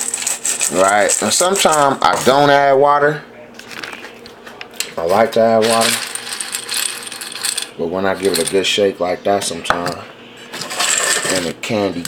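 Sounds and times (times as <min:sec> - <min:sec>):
dry kibble rattling in metal bowl: 0:00.0 - 0:02.4, 0:05.0 - 0:08.7.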